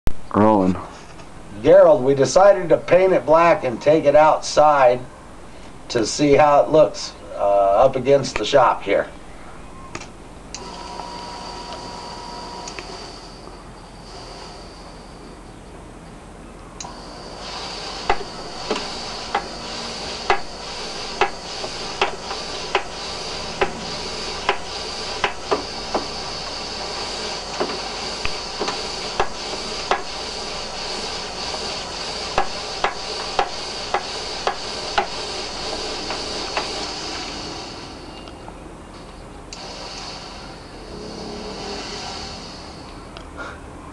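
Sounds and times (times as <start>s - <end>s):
smoke generator whine: 0.2s - 43.9s.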